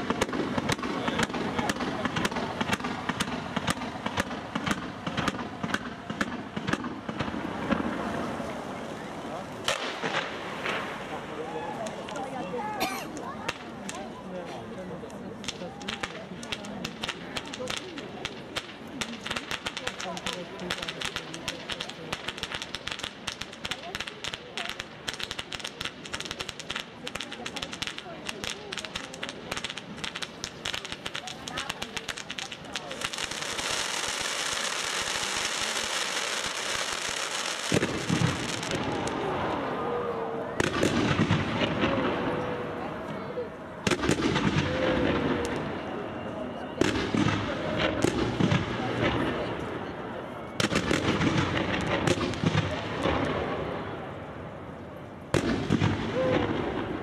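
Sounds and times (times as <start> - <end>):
loud firework bangs: 0.0 - 8.4, 9.6 - 11.4, 15.4 - 39.8, 40.6 - 42.8, 43.8 - 46.2, 46.8 - 49.9, 50.6 - 54.1, 55.3 - 57.0
firework fountains hissing: 0.0 - 54.2, 55.3 - 57.0
fireworks crackling: 0.0 - 57.0.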